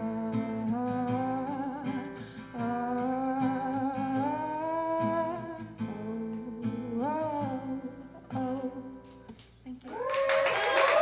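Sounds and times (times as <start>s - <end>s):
acoustic guitar: 0.0s - 10.1s.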